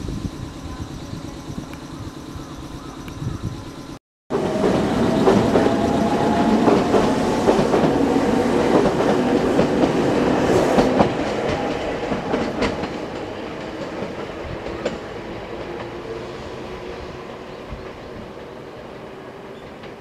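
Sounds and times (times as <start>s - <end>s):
electric train running: 0.0s - 19.5s.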